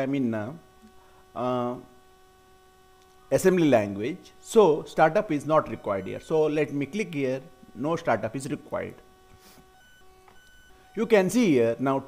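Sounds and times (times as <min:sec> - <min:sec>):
thin electronic whines: 0:00.0 - 0:12.0.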